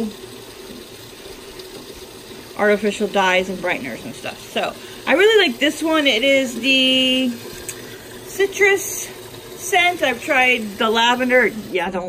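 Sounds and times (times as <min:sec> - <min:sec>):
faint hum: 0:00.0 - 0:12.0
washing machine filling with water: 0:00.0 - 0:12.0.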